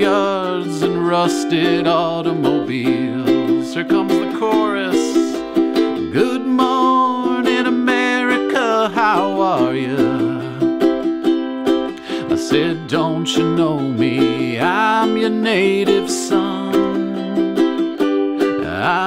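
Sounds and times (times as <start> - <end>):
man singing: 0.0 - 11.1, 11.9 - 17.8, 18.4 - 19.0
ukulele strumming: 0.0 - 19.0.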